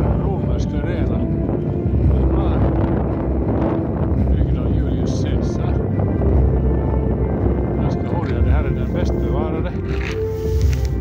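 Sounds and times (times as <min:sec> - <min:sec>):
wind rumble on microphone: 0:00.0 - 0:11.0
short hissing sounds: 0:10.2 - 0:11.0.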